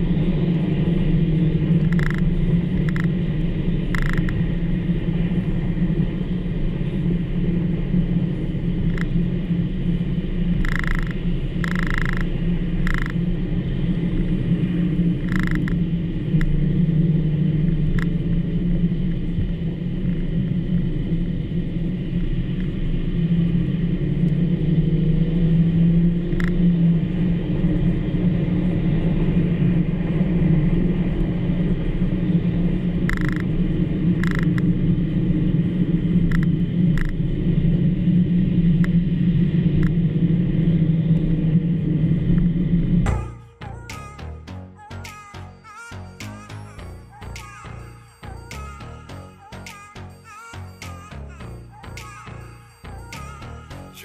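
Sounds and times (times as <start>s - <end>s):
car engine drone: 0.0s - 54.0s.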